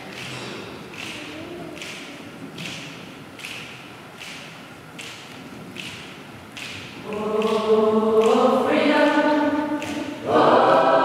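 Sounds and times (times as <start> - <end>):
choir body percussion strikes: 0.0 - 11.0.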